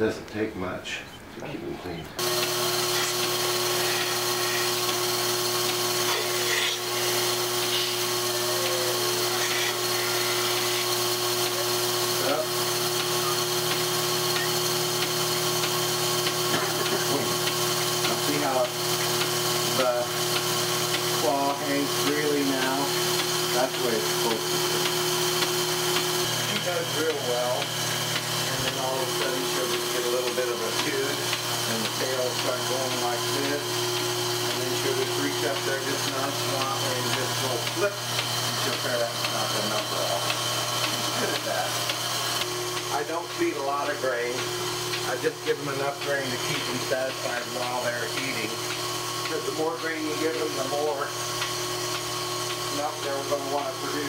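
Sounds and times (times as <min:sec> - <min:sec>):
milking machine pump humming: 0:00.0 - 0:54.0.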